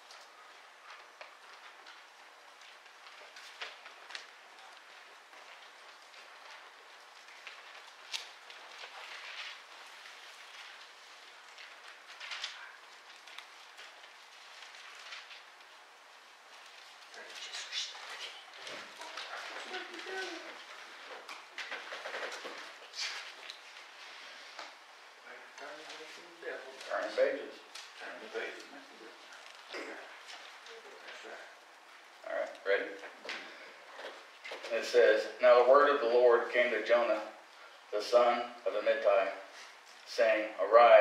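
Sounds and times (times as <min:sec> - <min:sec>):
thin pages being turned: 0:00.9 - 0:15.8
quiet voice: 0:17.1 - 0:20.7.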